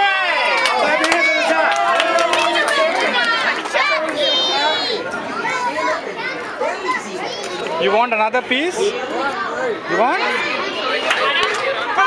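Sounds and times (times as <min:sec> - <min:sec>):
young children chattering: 0:02.3 - 0:12.0.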